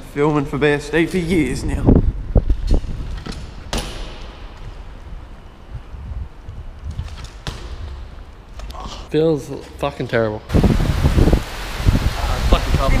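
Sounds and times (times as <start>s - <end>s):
bike tyres rumbling on concrete: 2.1s - 8.7s
bikes knocking and clattering: 2.4s - 8.7s.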